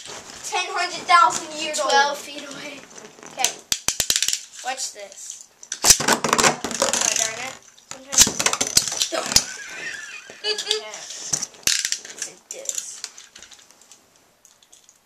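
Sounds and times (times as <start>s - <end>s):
spinning top rattling in plastic dish: 3.4s - 9.5s.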